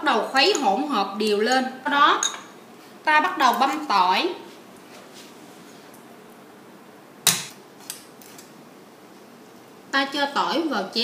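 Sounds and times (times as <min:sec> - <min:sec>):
cleaver chopping on wooden board: 0:07.3 - 0:07.5.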